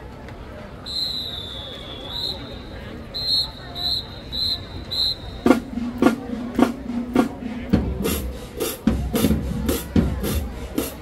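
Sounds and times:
quick drum beat with band: 0:05.3 - 0:11.0
marching band drum hits: 0:05.4 - 0:11.0.

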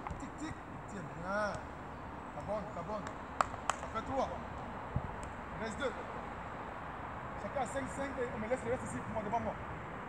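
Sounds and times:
football taps from a foot: 0:03.0 - 0:04.0.

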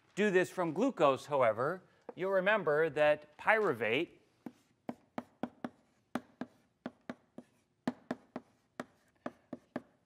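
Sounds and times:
chalk tapping on blackboard: 0:04.4 - 0:10.0.

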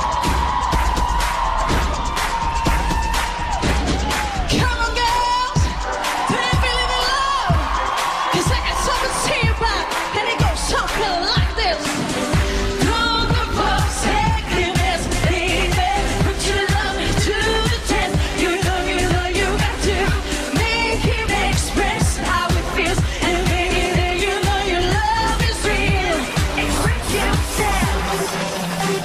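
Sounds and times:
backing track with steady beat: 0:00.0 - 0:29.0
woman singing pop song: 0:04.3 - 0:29.0.

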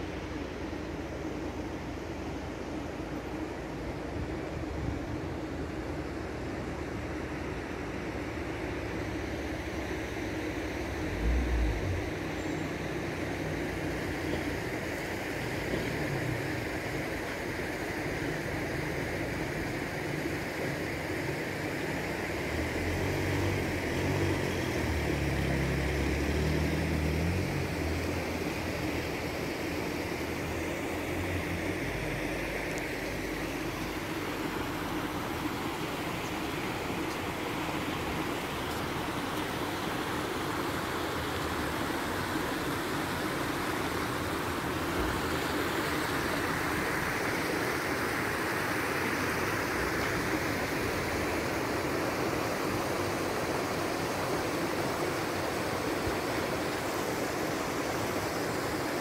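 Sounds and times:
vehicle driving on road: 0:00.0 - 0:59.0.

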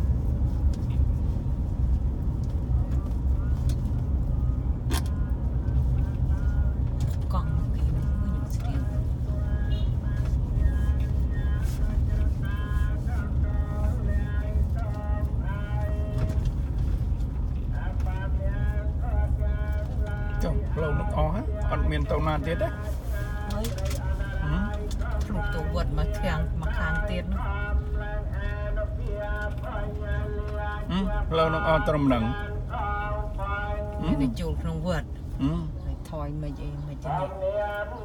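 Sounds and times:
vehicle rumbling on road: 0:00.0 - 0:38.0
person talking or singing: 0:20.4 - 0:27.4, 0:30.8 - 0:32.4, 0:33.9 - 0:37.5.

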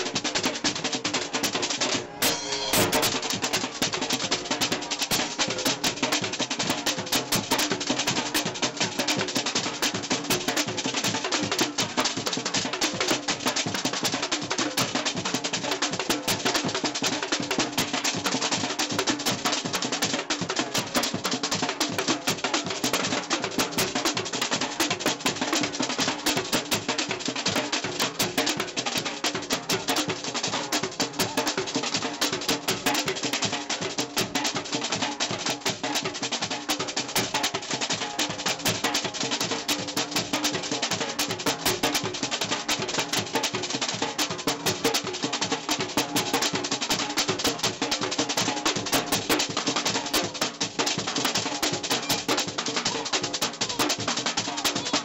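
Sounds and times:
marching snare drums playing: 0:00.0 - 0:13.8, 0:14.5 - 0:55.0.

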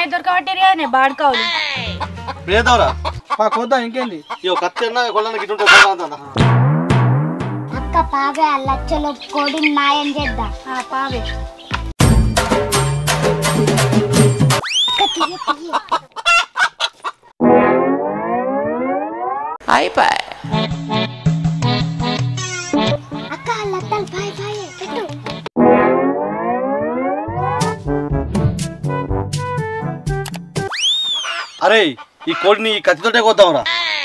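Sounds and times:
hen clucking: 0:00.6 - 0:06.4, 0:14.9 - 0:17.3, 0:31.0 - 0:34.0
comic brass music: 0:06.4 - 0:08.0, 0:17.4 - 0:23.4, 0:25.2 - 0:30.7
cartoon whistle sliding: 0:14.6 - 0:15.4, 0:30.7 - 0:31.6
trombone-like comedy sound effect: 0:17.4 - 0:23.3, 0:25.6 - 0:29.3.

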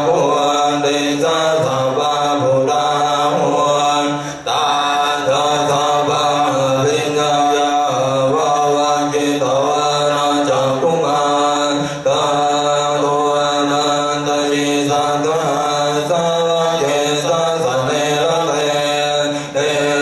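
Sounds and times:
group chanting in unison: 0:00.0 - 0:20.0.

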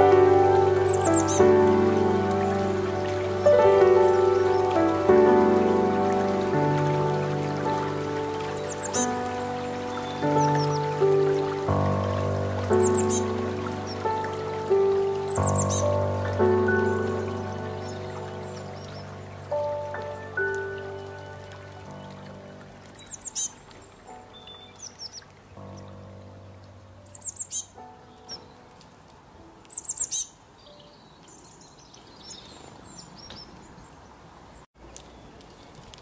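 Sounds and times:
high bird chirps: 0:00.0 - 0:01.8, 0:08.4 - 0:11.4, 0:12.6 - 0:26.0, 0:27.0 - 0:28.7, 0:29.7 - 0:33.6
gentle background music: 0:00.0 - 0:31.8.

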